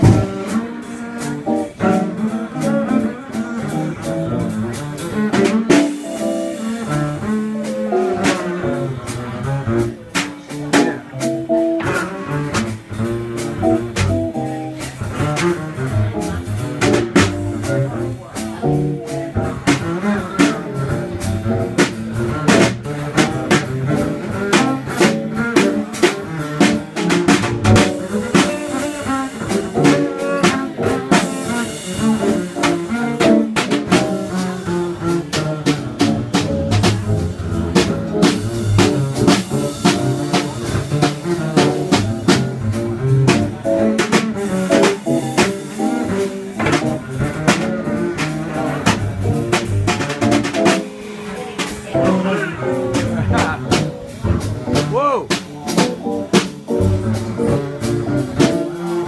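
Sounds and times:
drum and cymbal strokes: 0.0 - 11.6, 12.5 - 59.0
double bass: 0.0 - 59.0.

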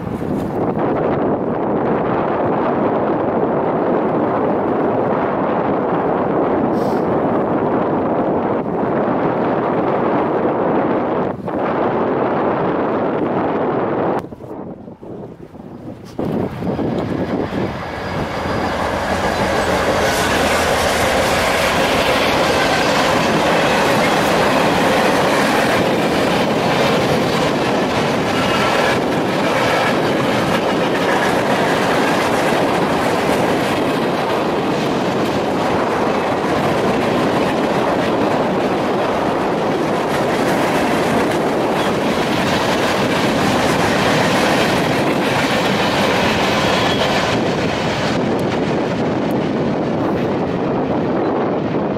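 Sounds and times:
freight train rumbling past: 0.0 - 51.9.

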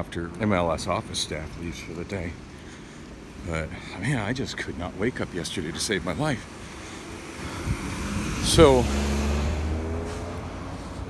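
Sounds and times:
vehicle accelerating past: 7.0 - 11.0.

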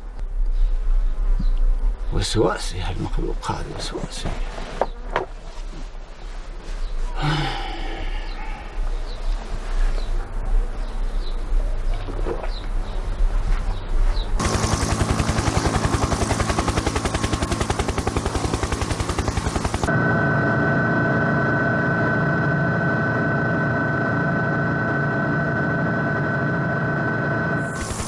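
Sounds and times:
helicopter rotor beating: 14.4 - 28.0
helicopter whine: 14.4 - 28.0.

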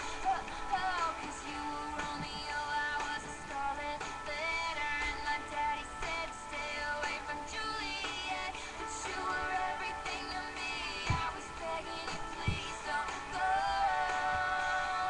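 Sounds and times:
girl singing a pop song: 0.0 - 15.0
recorded backing track: 0.0 - 15.0.

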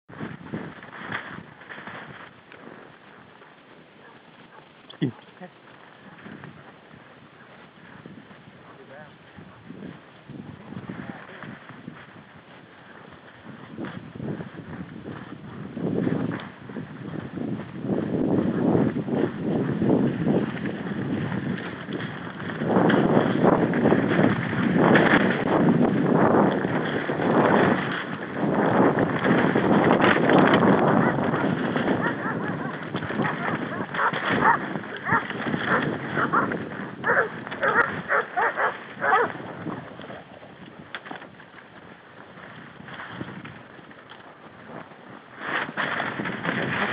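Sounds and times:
fronds brushing and crackling: 0.1 - 46.9
horse hoofbeats: 0.1 - 46.9
dogs barking: 4.0 - 4.7, 32.0 - 39.4.

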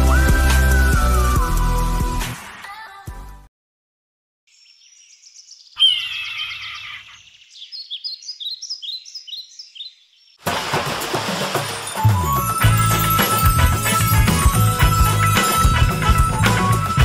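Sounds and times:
birds chirping: 4.5 - 10.4
sea wave breaking on rocks: 10.4 - 12.2.

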